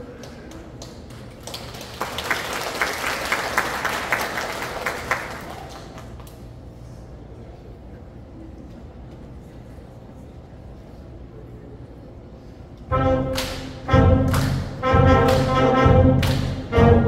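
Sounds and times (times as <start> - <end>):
audience applauding: 0.1 - 6.3
loud single claps: 13.3 - 15.6, 16.2 - 16.7.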